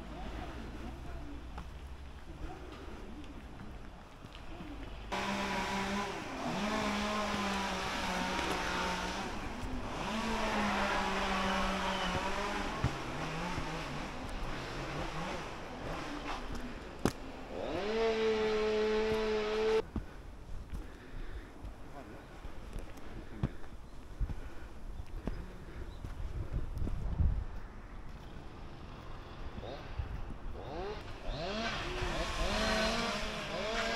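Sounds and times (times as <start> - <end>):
engine running: 4.8 - 19.8, 28.4 - 33.9.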